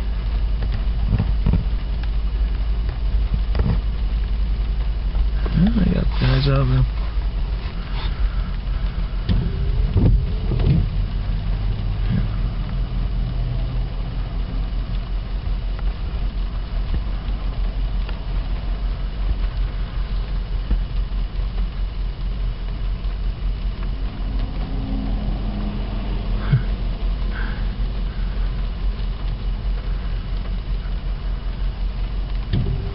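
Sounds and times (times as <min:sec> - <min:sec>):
car engine rumble from inside: 0:00.0 - 0:32.9.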